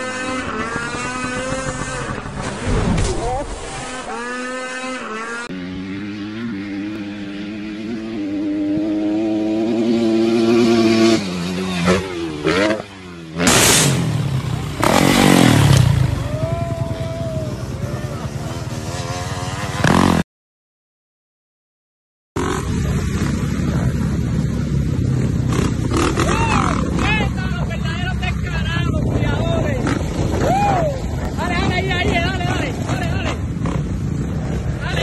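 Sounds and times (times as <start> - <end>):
motorcycle engine revving: 0.0 - 20.2, 22.4 - 30.4, 31.2 - 35.0
people shouting: 16.1 - 18.4, 26.2 - 26.8, 30.3 - 31.2
wind noise: 22.7 - 35.0.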